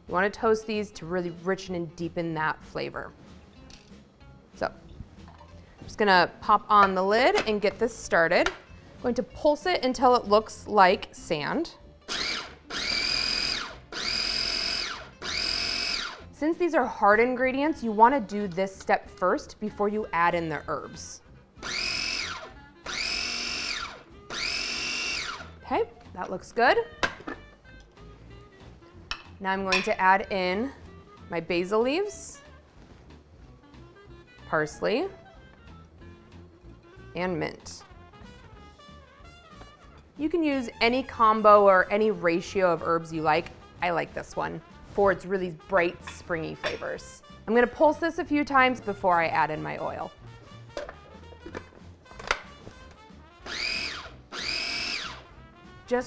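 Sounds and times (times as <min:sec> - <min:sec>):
quiet background music: 0:00.0 - 0:56.0
food processor whirring: 0:12.1 - 0:16.2, 0:21.6 - 0:25.6, 0:53.4 - 0:55.2.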